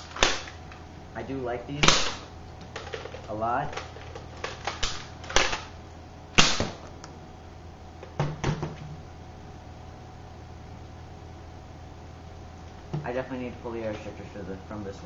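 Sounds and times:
toy blaster sharp snap: 0.1 - 0.6, 1.8 - 2.2, 6.4 - 6.8.

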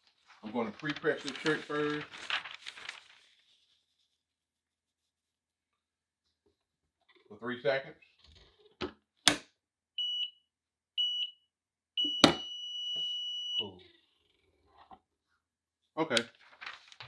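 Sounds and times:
timer beeping: 10.0 - 10.3, 11.0 - 11.3, 12.0 - 13.6.

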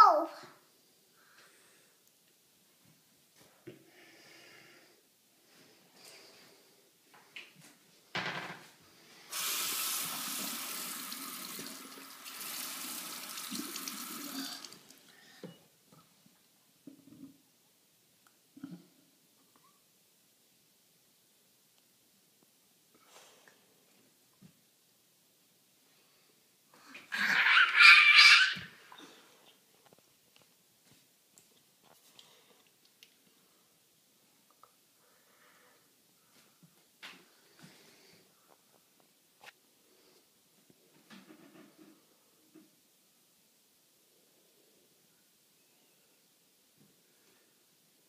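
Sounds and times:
child squealing: 0.0 - 0.4, 27.1 - 28.8
water running: 9.3 - 15.1.

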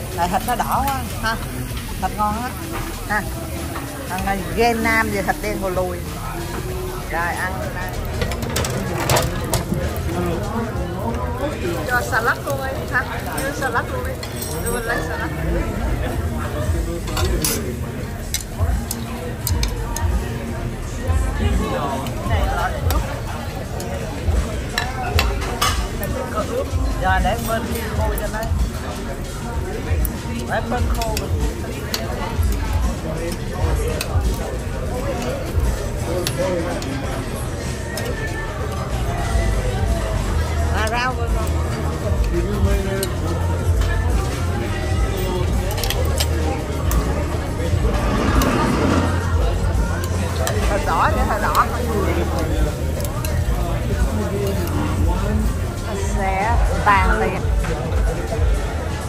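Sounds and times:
background chatter: 0.0 - 59.0
music: 0.0 - 59.0
metal tongs clicking on grill: 17.1 - 20.1, 45.4 - 47.2
metal spatula scraping grill plate: 47.6 - 49.7.

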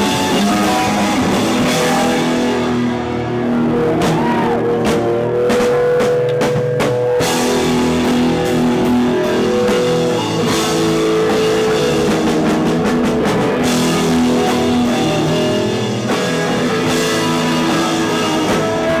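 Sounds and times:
live rock band: 0.0 - 19.0
drum hits: 3.9 - 19.0.

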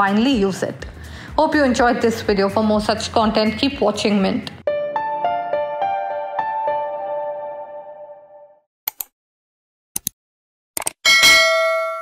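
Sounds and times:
bright bell ding: 11.1 - 12.0.

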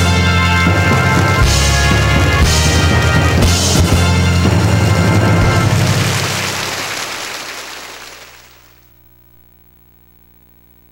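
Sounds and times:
crash-like sound effect: 3.4 - 7.5
faint steady hum: 6.2 - 10.9.

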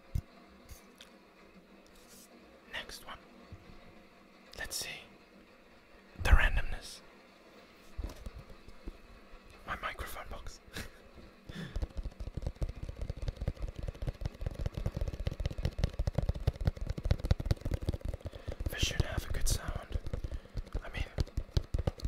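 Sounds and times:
fingertip tapping on cardboard box: 11.5 - 22.0.

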